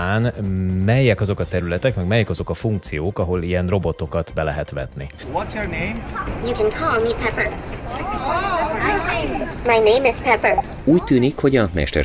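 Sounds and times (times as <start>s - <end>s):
echoing crowd chatter: 5.2s - 11.4s.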